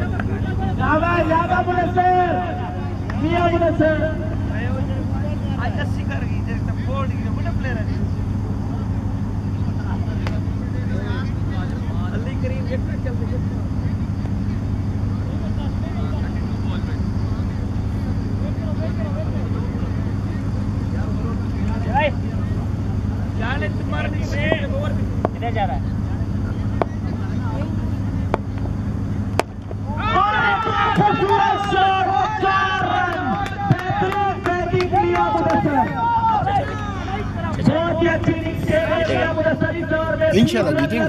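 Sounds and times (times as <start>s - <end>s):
low engine-like hum: 0.0s - 41.0s
distant players shouting: 21.4s - 41.0s.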